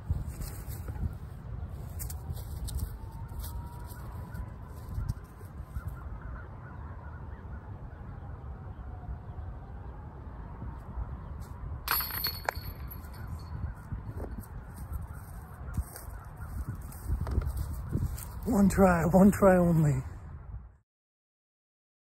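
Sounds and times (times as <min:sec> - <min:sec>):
wind rumbling on microphone: 0:00.0 - 0:20.8.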